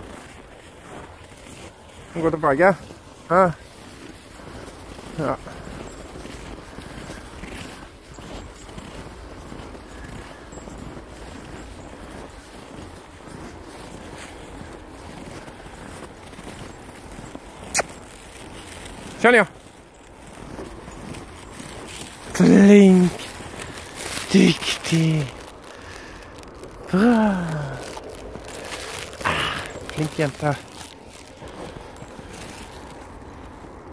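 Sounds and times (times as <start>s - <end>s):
footsteps on snow: 0.0s - 33.9s.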